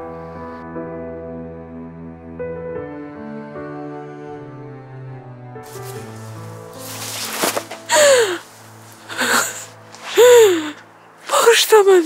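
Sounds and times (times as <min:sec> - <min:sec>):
soft background music: 0:00.0 - 0:12.0
sharp gasping breaths: 0:07.4 - 0:10.9
woman sobbing: 0:07.9 - 0:12.0.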